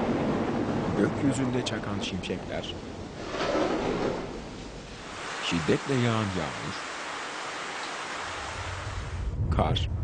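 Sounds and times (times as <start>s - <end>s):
heavy rain falling: 0.0s - 9.4s.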